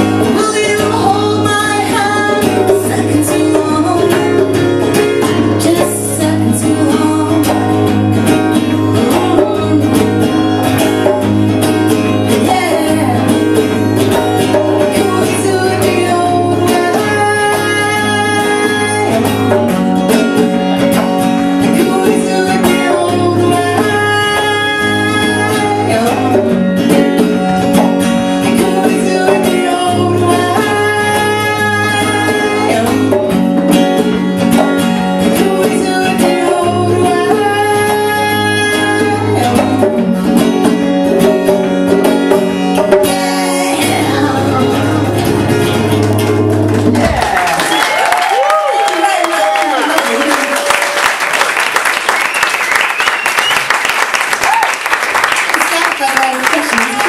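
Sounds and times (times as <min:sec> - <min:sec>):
woman singing: 0:00.0 - 0:20.5, 0:21.3 - 0:41.6, 0:42.3 - 0:45.9
strummed acoustic guitar: 0:00.0 - 0:47.4
congas played by hand: 0:00.0 - 0:57.0.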